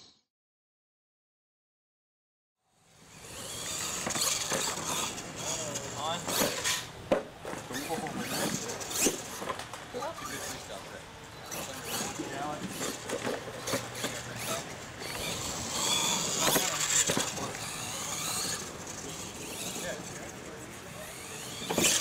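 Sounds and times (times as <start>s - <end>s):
rc monster truck driving: 2.7s - 22.0s
people talking indistinctly: 4.8s - 22.0s.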